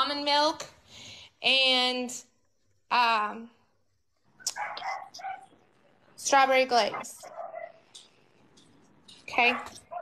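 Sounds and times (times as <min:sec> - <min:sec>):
dog barking: 0:04.5 - 0:05.6, 0:06.8 - 0:07.9, 0:09.4 - 0:10.0.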